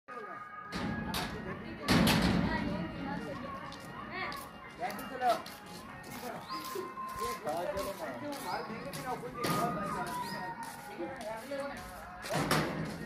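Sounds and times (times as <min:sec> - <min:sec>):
music: 0:00.1 - 0:13.0
voices: 0:00.1 - 0:13.0.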